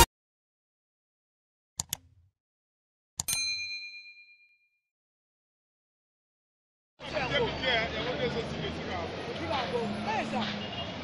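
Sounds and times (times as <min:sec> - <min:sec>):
click: 0:01.8 - 0:02.2
bright bell ding: 0:03.2 - 0:04.8.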